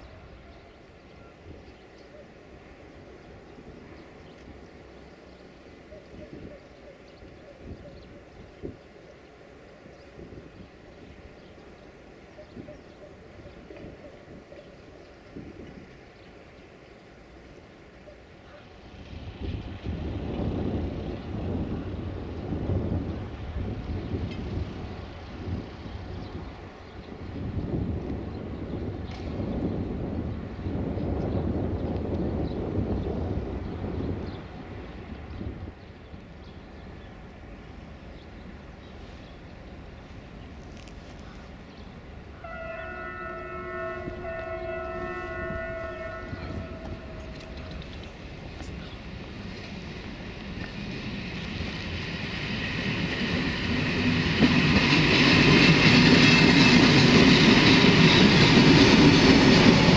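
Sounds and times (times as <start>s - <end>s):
wind gusting across microphone: 0.0s - 59.9s.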